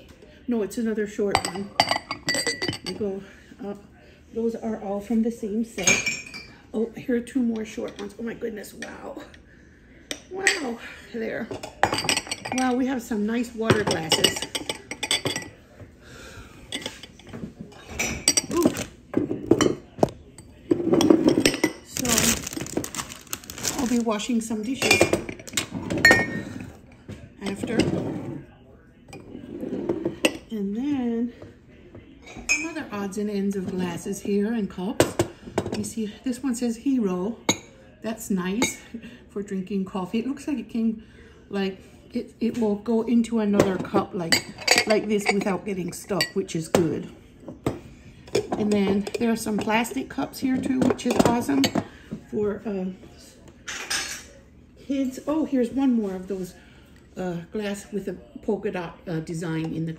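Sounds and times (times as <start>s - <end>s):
cups clattering on a table: 47.5s - 49.9s.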